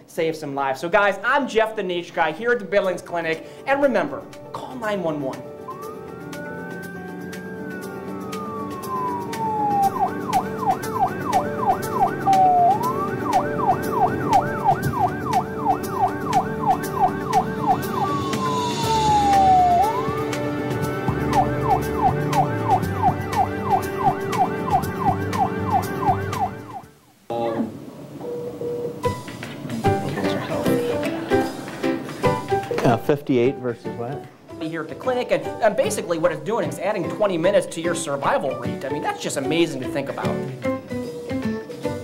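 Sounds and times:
background music: 0.5 - 42.0
emergency vehicle siren wailing and yelping: 5.7 - 27.0
brief rushing noise: 17.6 - 20.3.

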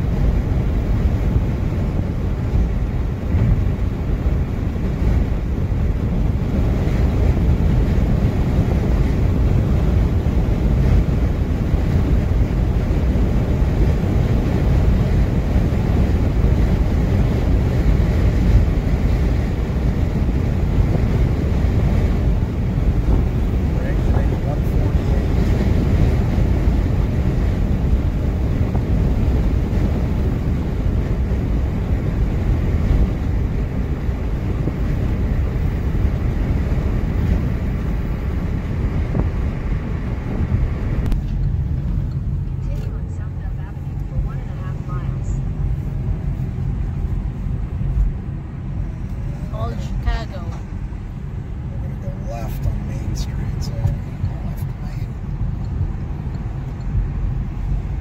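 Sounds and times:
car road and wind noise: 0.0 - 58.0.

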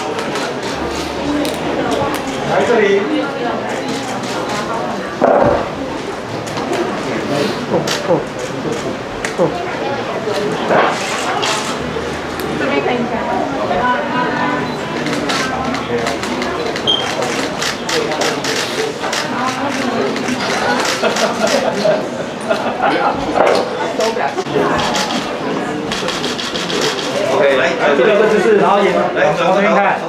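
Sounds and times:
indistinct voices murmuring: 0.0 - 29.4.

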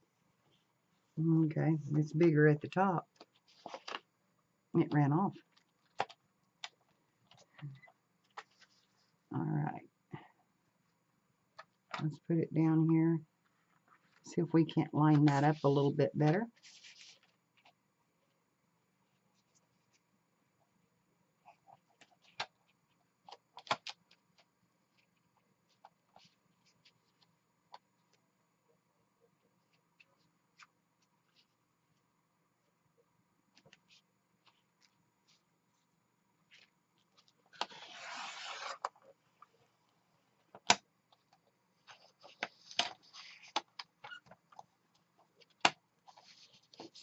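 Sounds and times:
paper rustling: 3.2 - 4.0, 8.2 - 9.1, 16.5 - 17.8, 36.5 - 39.7, 40.4 - 47.0
paper sliding and rustling: 16.6 - 17.4, 36.6 - 39.0, 41.8 - 43.6.

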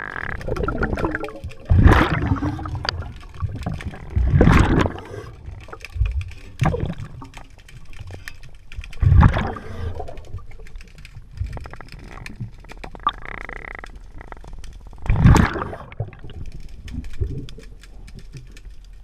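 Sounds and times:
rumbling bubbles: 0.0 - 18.6
faint clicking: 0.2 - 19.0
diver breathing through regulator: 4.7 - 5.8.

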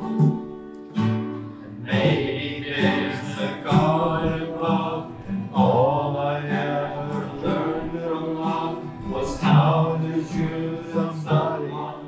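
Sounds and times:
strummed acoustic guitar: 0.0 - 12.0
voices singing together: 1.6 - 12.0.

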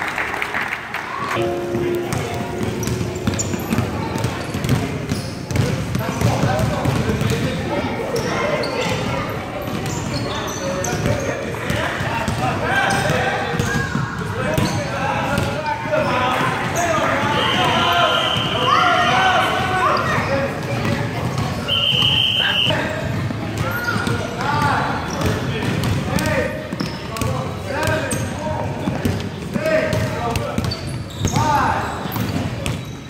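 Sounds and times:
basketball bouncing on hardwood floor: 2.1 - 7.5.

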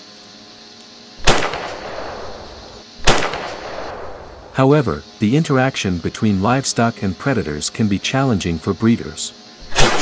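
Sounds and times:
rifle shots: 1.2 - 2.4, 3.0 - 4.4, 9.7 - 10.0.

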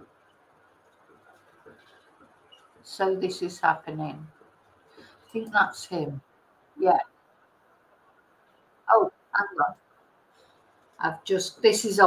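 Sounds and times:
woman speaking: 2.9 - 4.4, 5.3 - 7.1, 8.9 - 9.8, 11.0 - 12.0.

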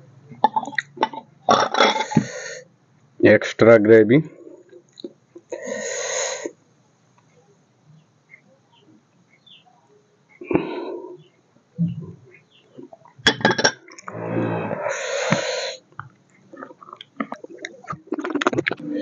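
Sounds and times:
man eating with throat noises: 0.3 - 2.6, 11.8 - 19.0
harsh rasping breath: 14.0 - 15.9.

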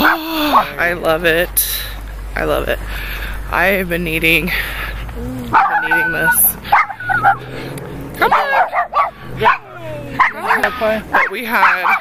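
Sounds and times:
dog whining and yipping: 5.3 - 7.6.

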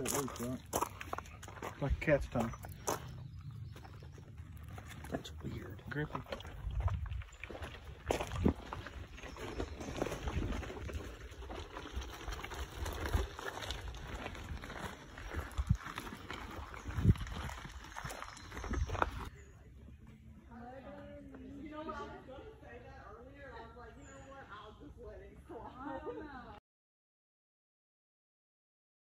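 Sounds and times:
rustling foliage: 0.0 - 19.6
footsteps: 0.0 - 21.8.

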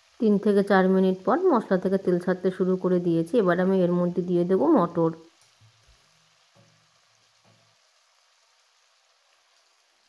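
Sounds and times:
peas sizzling in a wok: 0.0 - 10.0.

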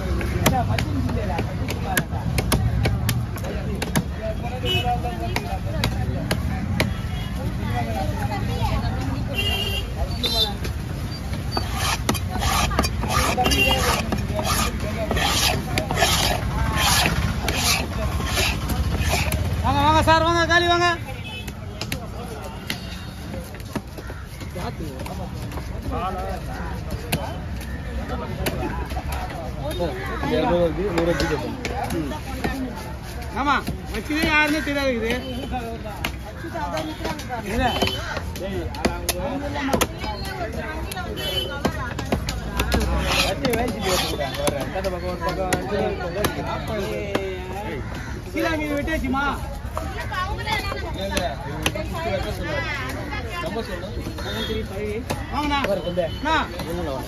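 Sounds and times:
voices talking: 0.0 - 57.0
knife scraping wooden block: 11.1 - 19.6, 41.2 - 46.2.

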